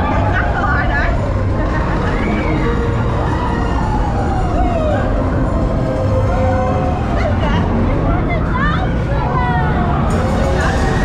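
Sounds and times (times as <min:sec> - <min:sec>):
low rumble of boat ride: 0:00.0 - 0:11.0.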